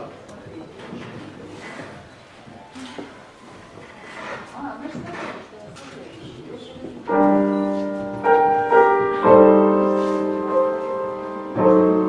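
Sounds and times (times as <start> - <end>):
faint voices and room murmur: 0.0 - 12.0
grand piano chords: 7.0 - 12.0.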